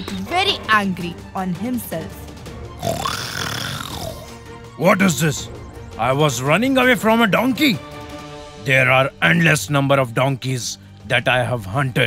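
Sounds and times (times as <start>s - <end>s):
background music: 0.0s - 12.0s
cartoon lion growl: 2.8s - 4.3s.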